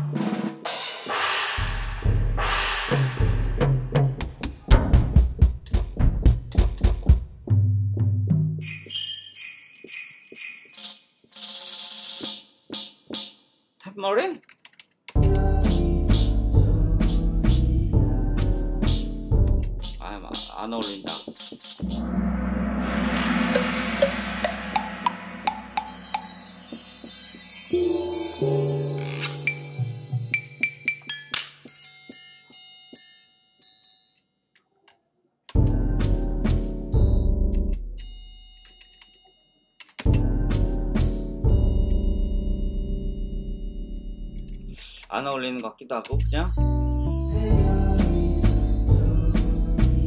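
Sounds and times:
struck percussion hits: 0.7 - 7.2, 21.4 - 28.3
sliding pitched sound: 21.8 - 29.1.

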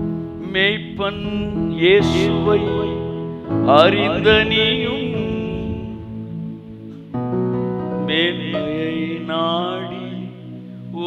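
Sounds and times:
sustained accompanying chords: 0.0 - 11.0
man singing: 0.4 - 6.4, 8.0 - 11.0.

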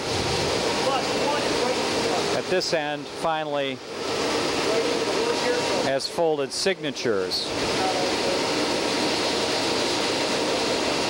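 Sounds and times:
printing press running: 0.0 - 11.0.

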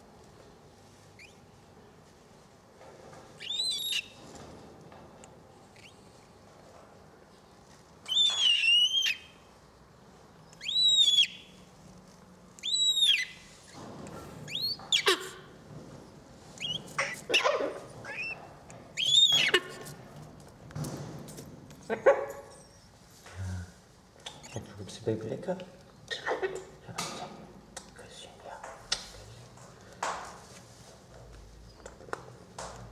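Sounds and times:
cockatoo chicks begging calls: 12.6 - 13.5, 14.5 - 15.4, 16.6 - 18.4, 19.0 - 19.9.

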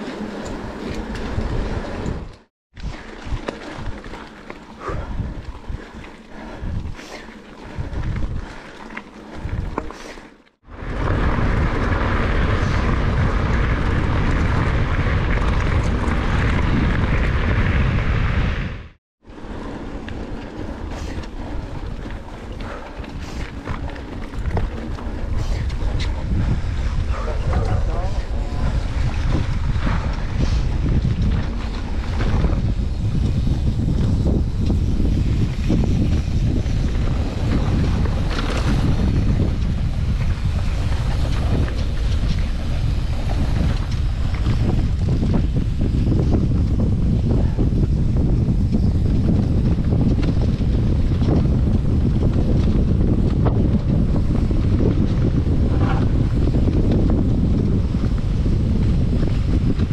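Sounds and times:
bike tyres rolling on grass: 0.0 - 59.9
wind noise on microphone: 0.0 - 59.9.

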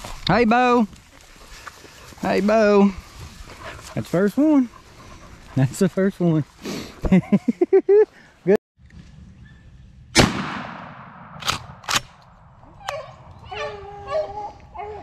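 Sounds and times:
man laughing: 7.0 - 8.2
shotgun shot echoing: 10.2 - 12.2
sharp clicks: 11.4 - 12.3.

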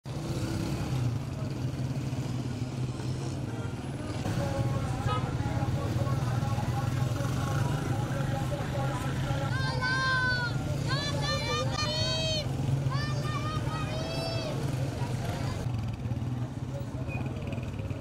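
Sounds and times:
motorcycle and car engines: 0.0 - 18.0
people's voices: 1.0 - 18.0.

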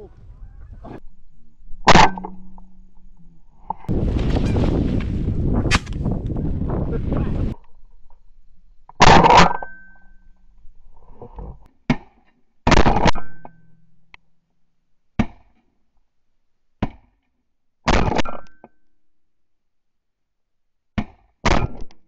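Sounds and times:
shotgun shots: 5.6 - 6.1.

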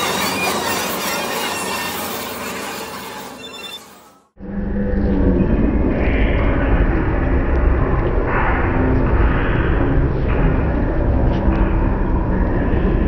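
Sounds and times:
short squealing glides: 0.0 - 4.3
dense noisy sound collage: 0.0 - 13.0
heavy low rumble: 4.4 - 13.0.

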